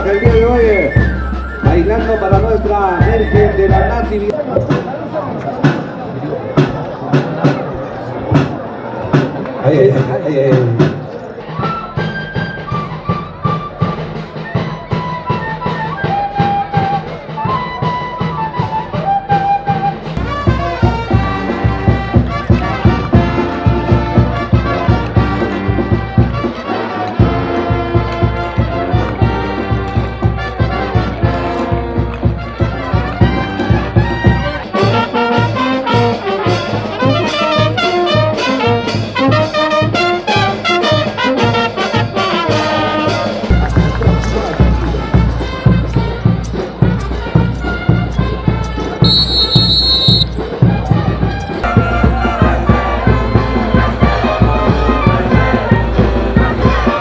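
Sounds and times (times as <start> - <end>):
brass band playing dance tune: 0.0 - 4.4, 11.6 - 57.0.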